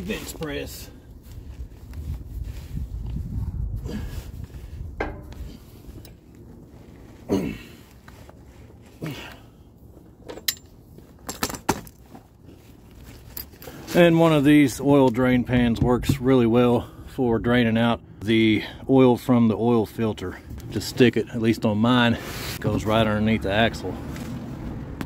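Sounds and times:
clothes rustling: 0.0s - 11.2s
man grunting and breathing hard: 3.8s - 4.4s.

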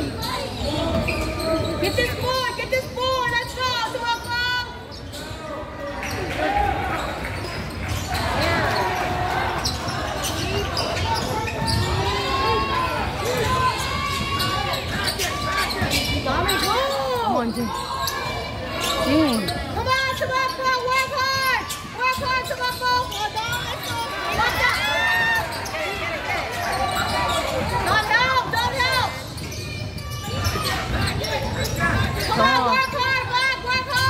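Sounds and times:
sneakers squeaking: 0.0s - 34.0s
voices shouting: 6.0s - 34.0s.

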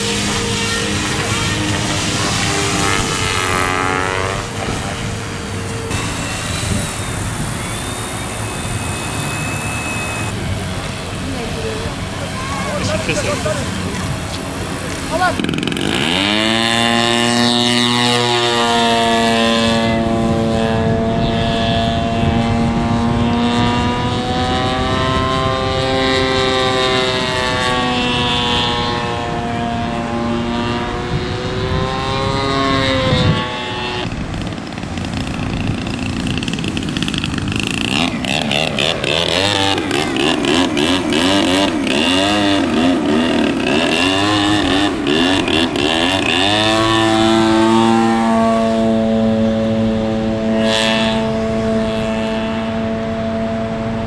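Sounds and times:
model airplane engine buzzing: 0.0s - 54.0s.

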